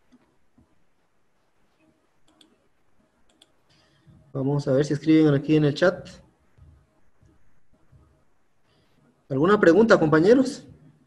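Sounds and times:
faint mouse clicks: 1.8s - 2.6s, 3.2s - 4.3s.

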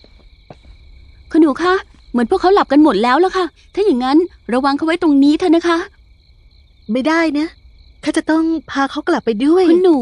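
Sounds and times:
crickets chirping: 0.0s - 10.0s
woman speaking: 1.3s - 5.9s, 6.9s - 10.0s.

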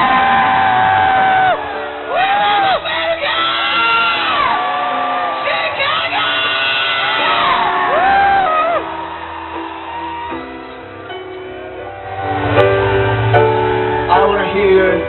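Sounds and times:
crowd whooping and cheering: 0.0s - 15.0s.

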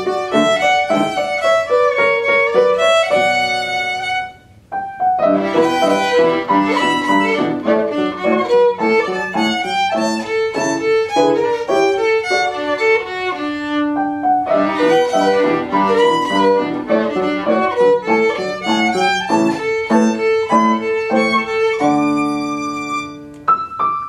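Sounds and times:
violin: 0.0s - 23.6s
piano: 0.0s - 24.0s.

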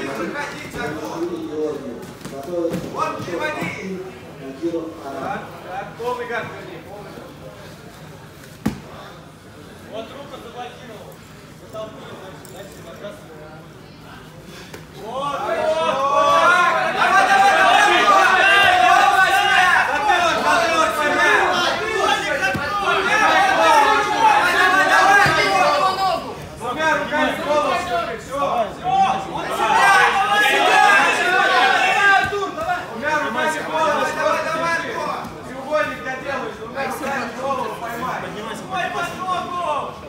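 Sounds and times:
overlapping chatter: 0.0s - 40.0s
men calling out: 15.0s - 35.0s.

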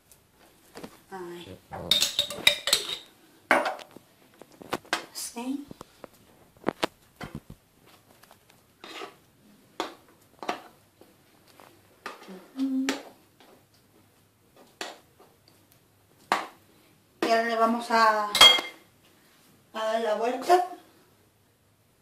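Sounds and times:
kitchen utensils clinking: 1.8s - 3.9s, 18.3s - 18.8s.

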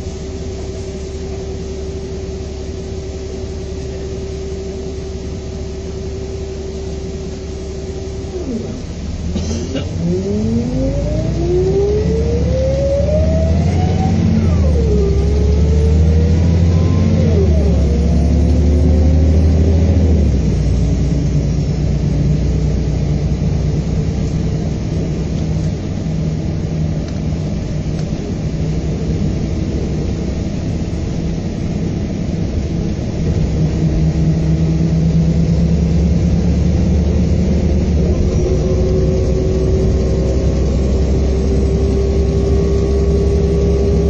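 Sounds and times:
diesel engine accelerating: 0.0s - 44.0s
road noise: 0.0s - 44.0s.

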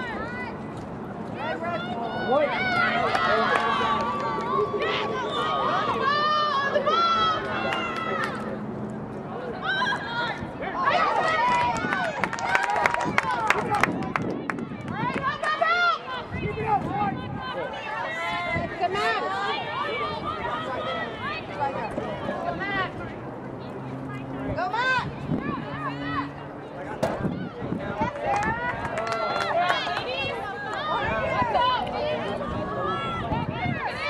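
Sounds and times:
players shouting across field: 15.0s - 34.0s.

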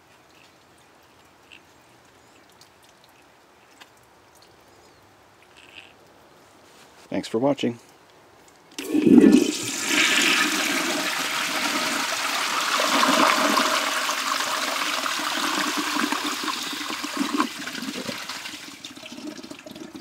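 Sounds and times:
toilet flushing: 8.8s - 20.0s.

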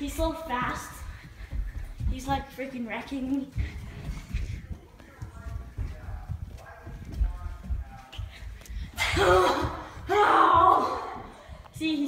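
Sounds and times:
faint voices: 0.0s - 11.6s
running footsteps on hardwood floor: 0.0s - 12.0s.

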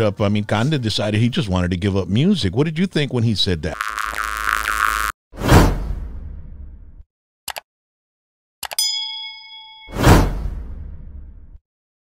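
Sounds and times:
bright bell-like ding: 8.8s - 10.2s.

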